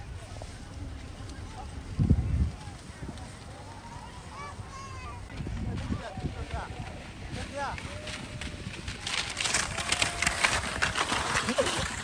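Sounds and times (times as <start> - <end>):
skis scraping over snow: 5.3 - 12.0.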